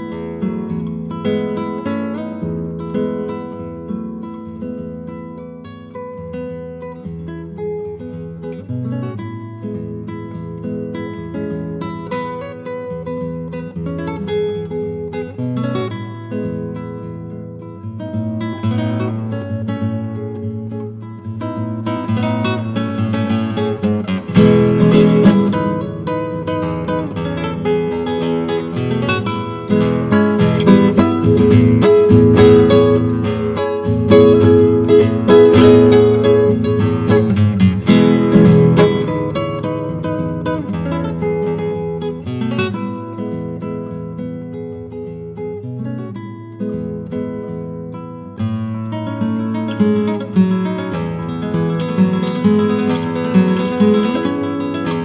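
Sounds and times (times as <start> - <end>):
solo classical guitar: 0.0 - 55.0.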